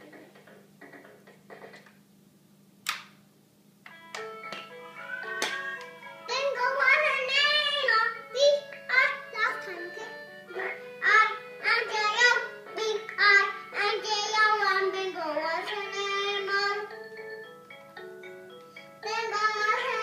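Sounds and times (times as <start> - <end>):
electronic keyboard notes: 3.9 - 20.0
girl singing: 5.3 - 17.0, 19.0 - 20.0.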